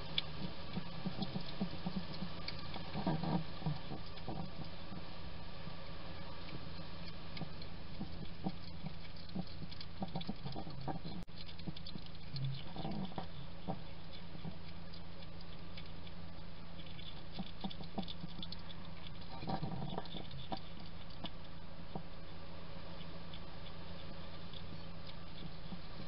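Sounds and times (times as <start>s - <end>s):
hedgehog crunching dry food: 0.0s - 5.0s, 5.7s - 26.0s
steady low hum: 0.0s - 26.0s.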